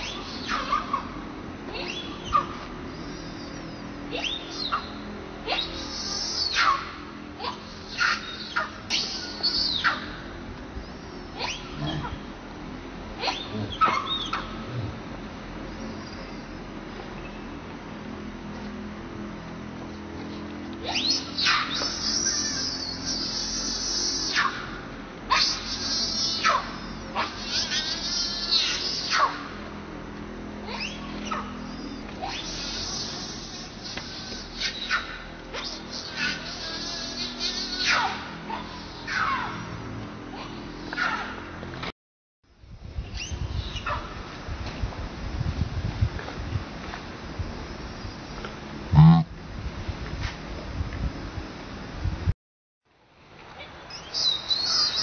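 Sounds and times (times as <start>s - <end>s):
baby monkey crying: 4.1s - 10.2s, 13.2s - 14.5s, 20.8s - 24.7s, 25.3s - 29.4s, 30.7s - 39.6s, 48.9s - 49.3s
low wind rumble: 42.5s - 52.3s.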